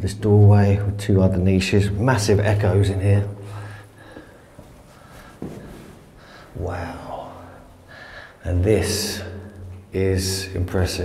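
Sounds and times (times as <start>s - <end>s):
faint footsteps on stone floor: 4.0s - 6.7s.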